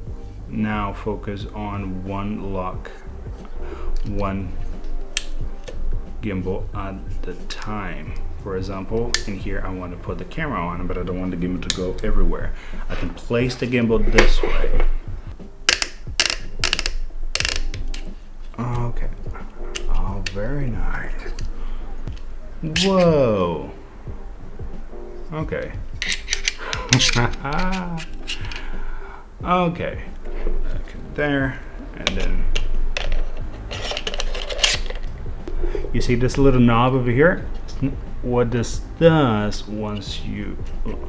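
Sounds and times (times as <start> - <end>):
mechanical clicking and ratcheting: 15.7 - 18.0, 26.0 - 28.6
parts scraping together: 15.7 - 18.8, 26.0 - 28.8, 32.0 - 35.2.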